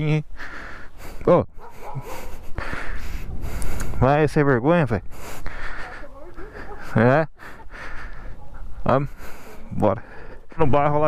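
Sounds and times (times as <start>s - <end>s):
dog barking: 1.6s - 2.4s, 8.3s - 8.7s, 9.4s - 9.8s.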